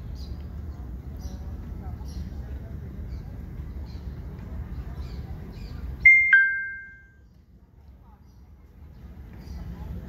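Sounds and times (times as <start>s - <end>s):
two-note electronic chime: 6.1s - 7.1s.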